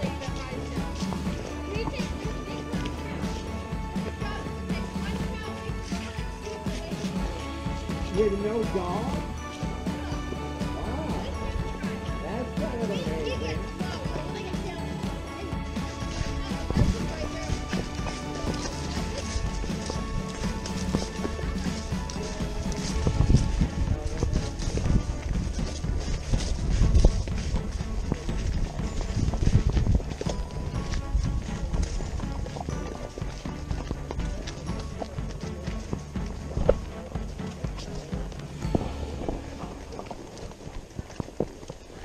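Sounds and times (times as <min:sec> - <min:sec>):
hoofbeats of horses on dirt: 0:00.0 - 0:42.0
music: 0:00.0 - 0:42.0.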